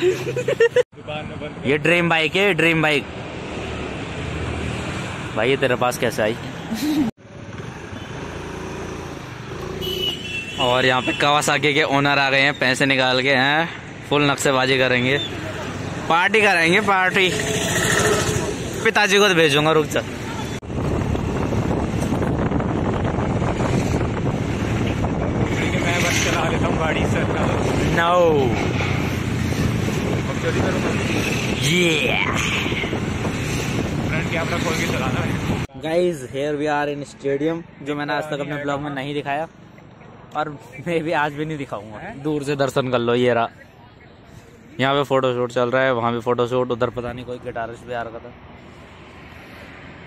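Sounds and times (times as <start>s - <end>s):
roadside traffic: 0.0s - 50.0s
wind rushing over microphone: 20.6s - 35.7s.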